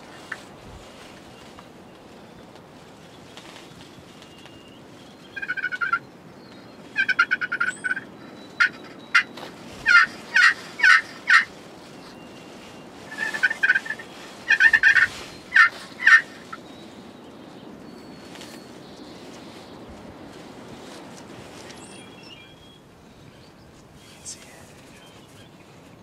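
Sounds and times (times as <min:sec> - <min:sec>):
turkey yelps: 0:05.4 - 0:06.0, 0:07.0 - 0:11.5, 0:13.1 - 0:16.5
turkeys gobbling: 0:05.4 - 0:06.0, 0:07.0 - 0:12.2, 0:13.1 - 0:16.6.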